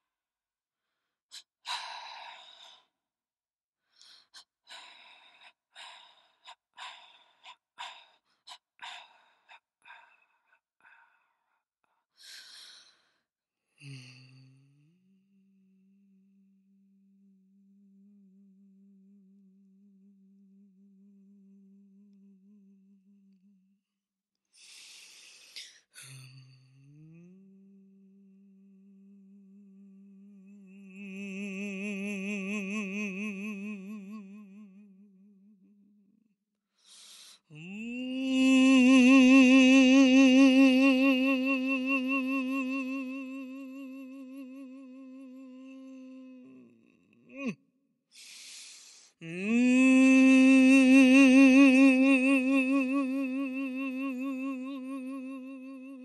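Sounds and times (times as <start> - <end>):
person breathing hard: 3.9 - 11.5, 36.8 - 37.6, 48.1 - 49.2
person humming faint note: 49.2 - 56.0.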